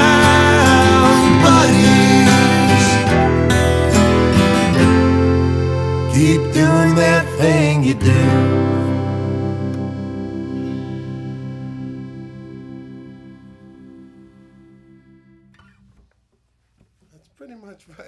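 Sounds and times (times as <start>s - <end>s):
acoustic guitar chord ringing: 0.0s - 15.8s.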